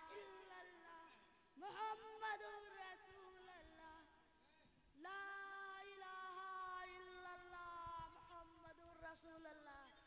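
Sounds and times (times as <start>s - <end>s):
boy singing long note: 0.0s - 1.0s, 5.0s - 9.4s.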